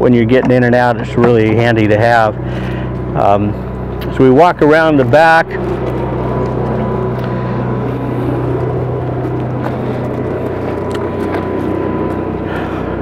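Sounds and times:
low mechanical engine drone: 0.0 - 13.0
faint high whine: 0.8 - 13.0.

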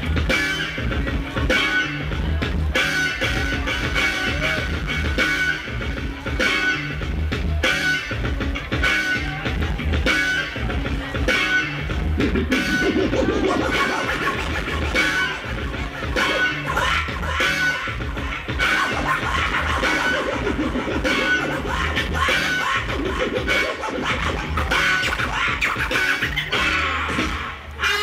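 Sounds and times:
beat with bass pulse: 6.9 - 27.5
vinyl record scratching: 12.1 - 27.5.

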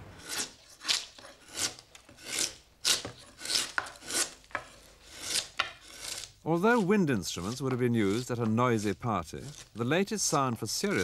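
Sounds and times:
chisel cutting wood: 0.0 - 11.0.

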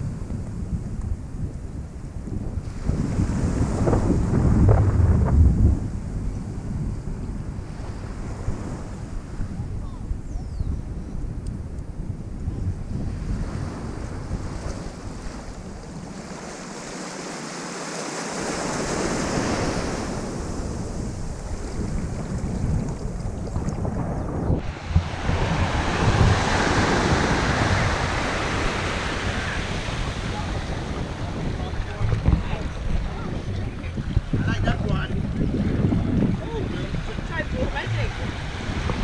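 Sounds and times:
wind buffeting microphone: 0.0 - 17.4, 18.2 - 39.0
small waves washing on shore: 12.8 - 39.0.

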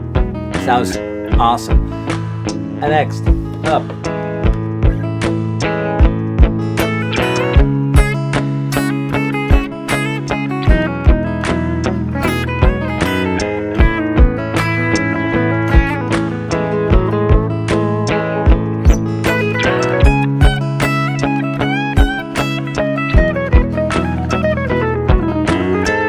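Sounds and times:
electric acoustic guitar picked: 0.0 - 26.0
layered guitar loop: 0.0 - 26.0
steady drum beat: 1.4 - 2.1, 6.0 - 8.2, 9.5 - 9.8, 10.7 - 11.3, 12.3 - 13.2, 13.8 - 14.8, 15.6 - 16.3, 16.9 - 17.6, 18.5 - 21.0, 22.0 - 22.3, 23.2 - 23.9.

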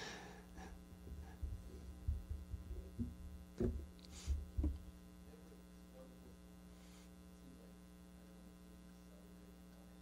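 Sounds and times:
electrical mains hum: 0.0 - 10.0
low thumps: 1.0 - 5.0.

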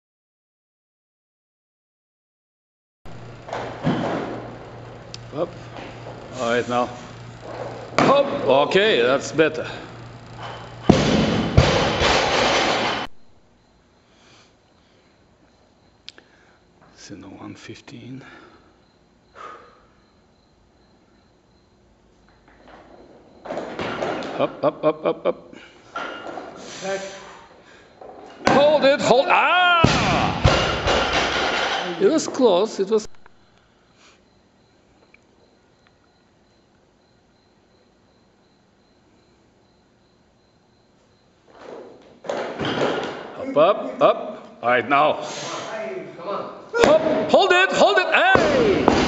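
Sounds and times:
steady low hum: 3.1 - 29.2
brief breathy hiss: 26.6 - 27.8, 33.4 - 34.2, 45.2 - 45.7
man calling out: 28.5 - 30.4, 43.4 - 48.8.

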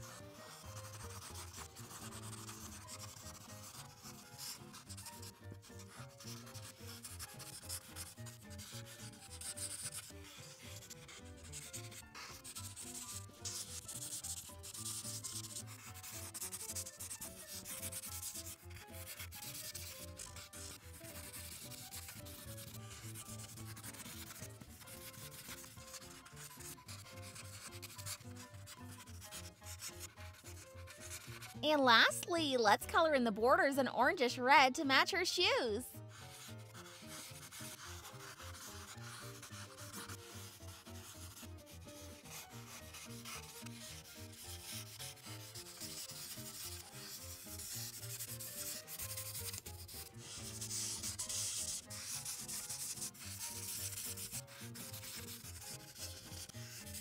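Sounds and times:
marker scratching on paper: 0.0 - 57.0.

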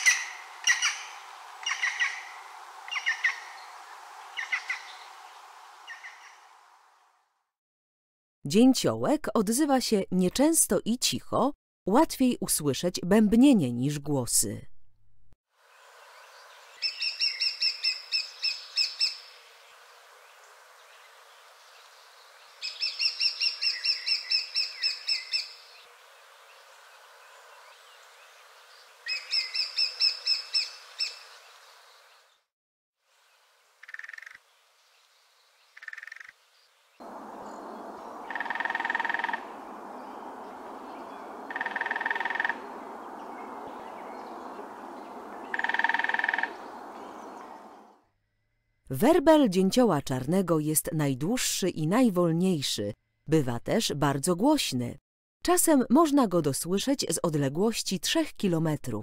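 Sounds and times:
woodpecker calling: 0.0 - 3.7, 4.3 - 5.1, 5.8 - 6.4, 16.8 - 19.3, 22.6 - 25.8, 29.0 - 31.2, 33.8 - 34.4, 35.7 - 36.4, 37.0 - 47.9
background hiss: 0.0 - 7.3, 15.6 - 23.5, 25.4 - 32.3, 33.1 - 48.0.

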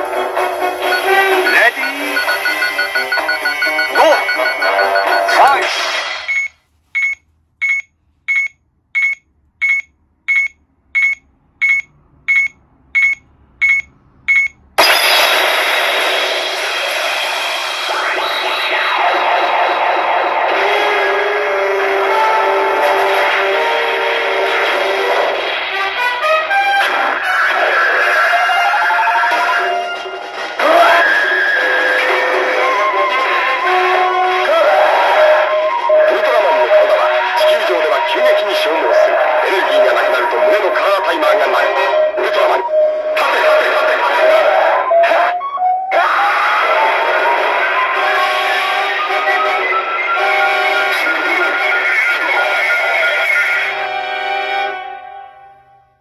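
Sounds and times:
loud machine music and effects: 0.0 - 6.5, 14.8 - 55.2
short high beeps: 0.8 - 5.6, 6.2 - 15.2.

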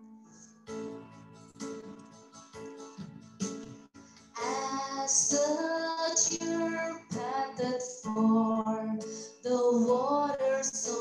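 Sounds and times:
woman singing slow worship song: 4.4 - 11.0.

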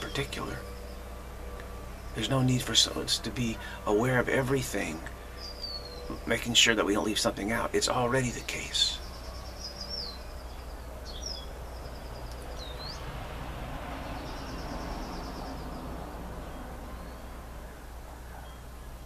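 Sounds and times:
bird trilling calls: 0.0 - 1.2, 2.0 - 13.1
steady low hum: 0.0 - 19.0.

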